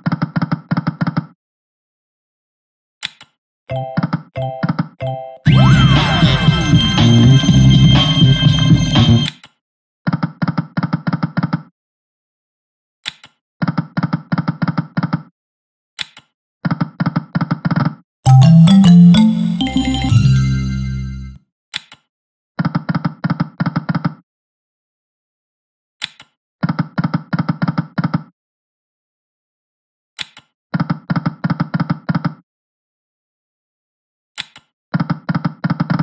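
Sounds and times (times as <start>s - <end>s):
sharp click: 3.0s - 3.4s.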